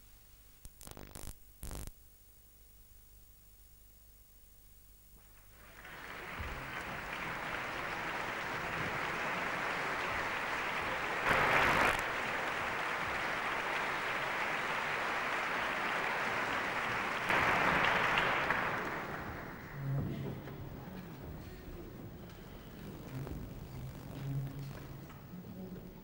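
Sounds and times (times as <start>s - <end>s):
audience applauding: 5.4s - 21.0s.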